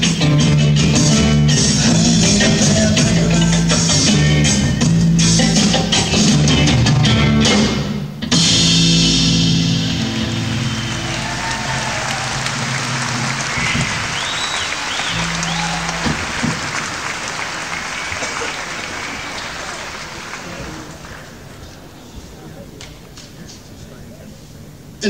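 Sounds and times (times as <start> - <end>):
rock band closing chord: 8.3 - 18.4
audience applauding and cheering: 10.0 - 22.0
crowd whistling: 10.2 - 20.3.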